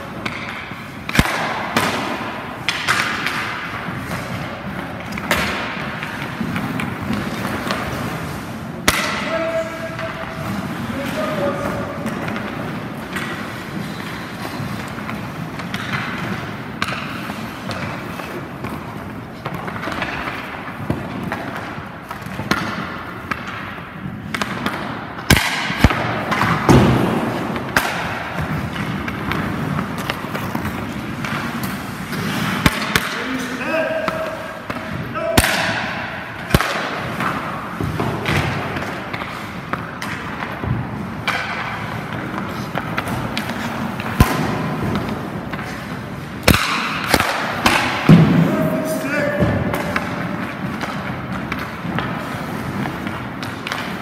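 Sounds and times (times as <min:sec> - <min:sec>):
pucks and equipment knocking: 0:00.0 - 0:54.0.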